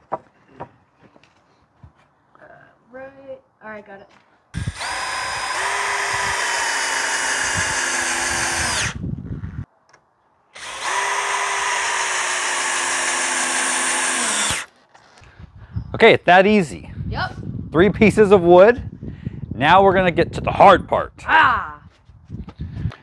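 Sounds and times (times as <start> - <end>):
power drill driving screws: 4.6 - 9.0, 10.6 - 14.7.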